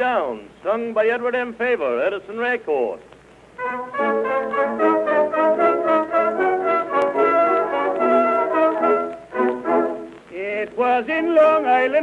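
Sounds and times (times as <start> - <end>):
brass band playing a waltz: 3.6 - 10.2.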